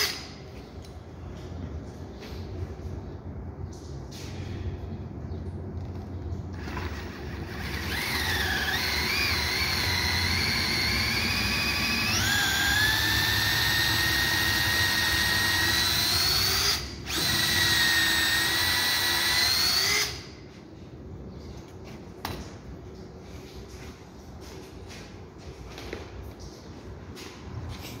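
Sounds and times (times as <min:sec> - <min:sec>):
cordless drill boring wood: 0:06.6 - 0:20.2.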